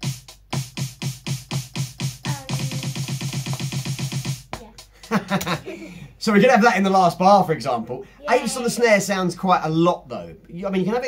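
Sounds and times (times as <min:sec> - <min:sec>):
electronic snare drum roll: 0:00.0 - 0:04.5.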